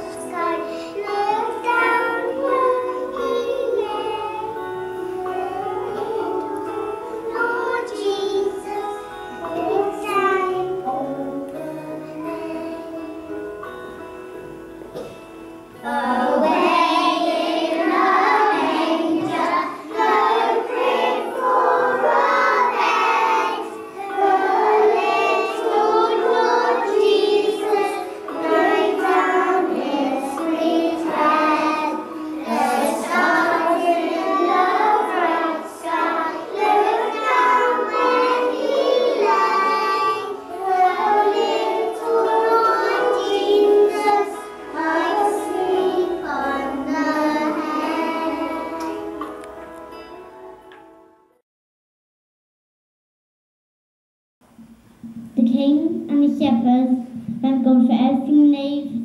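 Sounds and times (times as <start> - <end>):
young children singing: 0.0 - 13.9, 14.9 - 15.2, 15.8 - 50.1.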